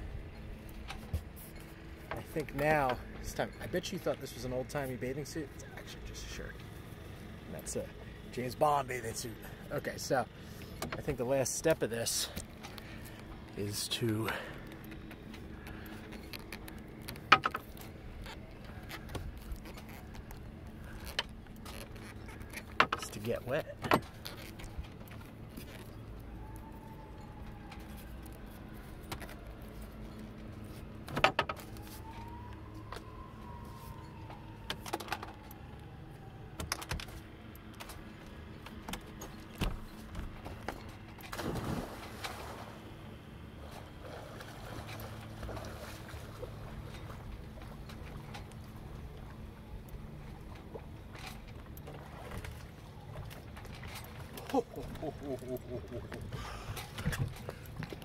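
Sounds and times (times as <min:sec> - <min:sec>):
person diving into water splash: 0:41.3 - 0:42.8.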